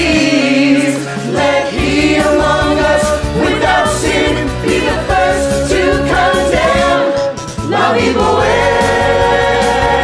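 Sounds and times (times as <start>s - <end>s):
musical theatre backing track: 0.0s - 10.0s
voices singing together: 0.0s - 10.0s.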